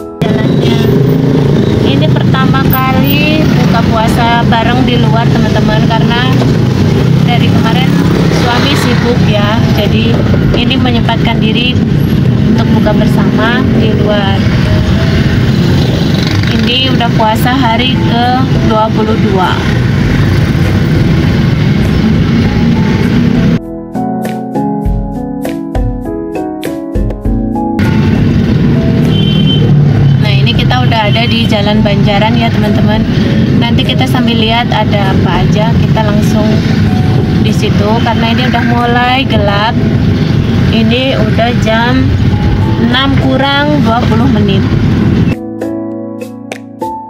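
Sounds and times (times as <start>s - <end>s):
road and traffic rumble: 0.0s - 25.1s, 25.9s - 47.0s.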